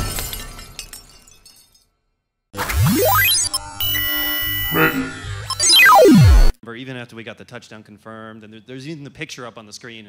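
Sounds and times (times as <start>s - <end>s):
shatter crash: 0.0s - 1.9s
glass-like debris tinkling: 0.0s - 2.4s.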